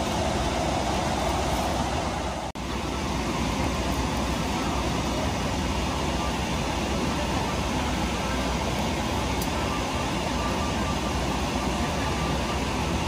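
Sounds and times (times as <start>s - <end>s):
air-conditioning airflow in cabin: 0.0s - 13.0s.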